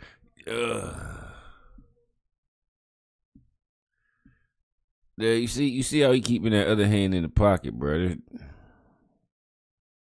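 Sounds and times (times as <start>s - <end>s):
man sighing: 0.0s - 1.9s.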